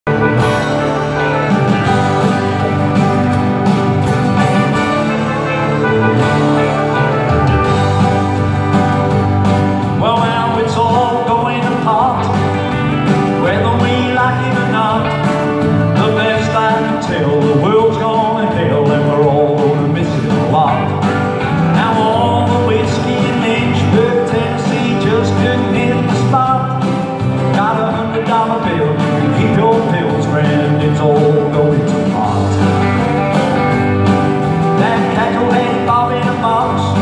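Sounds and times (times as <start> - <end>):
country music over a pa: 0.0 - 37.0
strummed acoustic guitar: 0.0 - 37.0
gliding lead melody: 0.1 - 16.0.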